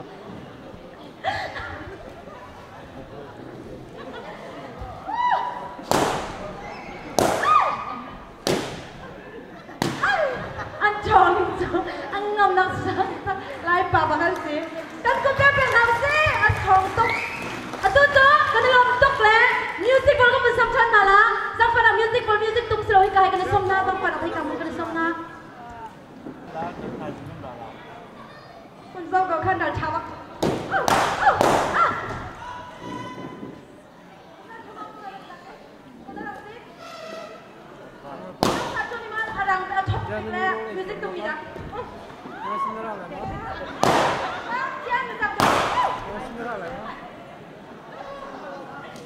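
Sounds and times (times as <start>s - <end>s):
balloons bursting with bangs: 5.8s - 6.5s, 7.2s - 7.5s, 8.4s - 9.0s, 30.4s - 32.0s, 38.4s - 38.9s, 43.8s - 44.3s, 45.4s - 46.0s.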